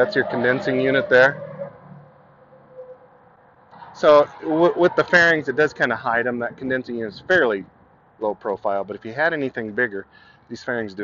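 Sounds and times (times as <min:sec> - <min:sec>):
faint outdoor background noise: 0:00.0 - 0:11.0.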